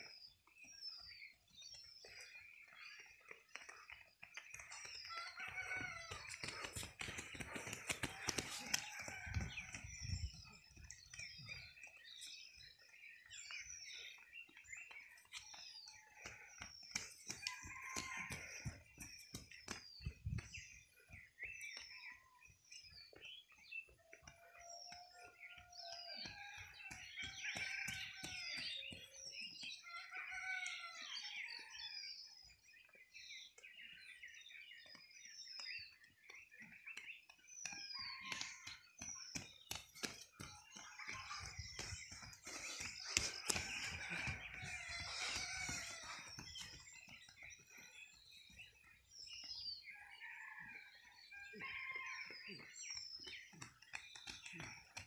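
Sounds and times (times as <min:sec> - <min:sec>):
birds chirping: 0:00.0 - 0:55.0
rooster crowing: 0:05.2 - 0:06.7, 0:17.4 - 0:18.7, 0:43.2 - 0:46.4.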